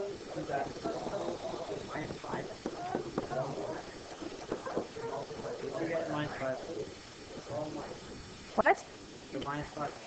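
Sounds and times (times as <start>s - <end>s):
faint indistinct talking: 0.0s - 10.0s.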